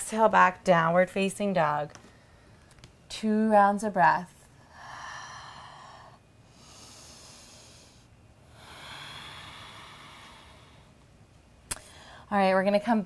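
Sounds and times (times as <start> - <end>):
woman breathing deeply: 2.0 - 2.7, 4.6 - 11.0, 11.8 - 12.3.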